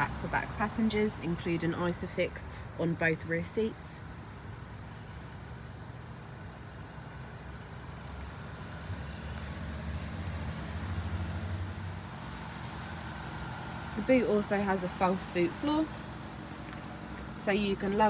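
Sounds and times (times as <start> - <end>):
vehicle engine running: 0.0 - 18.0.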